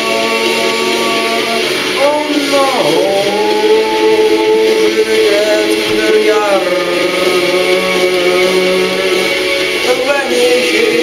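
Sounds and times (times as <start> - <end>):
man singing long note: 0.0 - 11.0
song music: 0.0 - 11.0.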